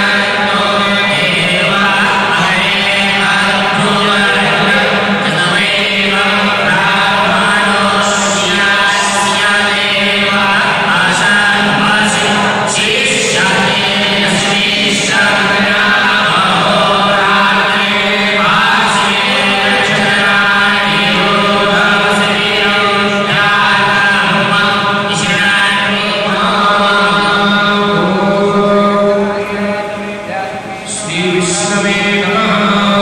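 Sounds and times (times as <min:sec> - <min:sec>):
group chanting: 0:00.0 - 0:33.0.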